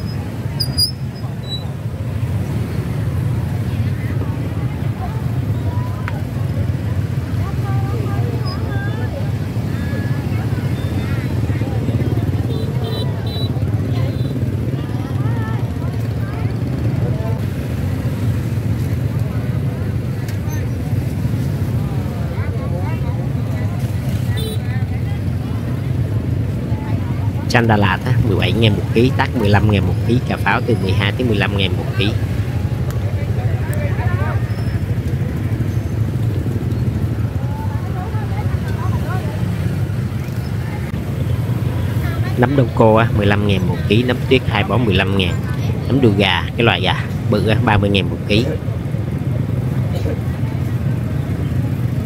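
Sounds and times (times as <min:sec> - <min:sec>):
voices chattering: 0:00.0 - 0:52.0.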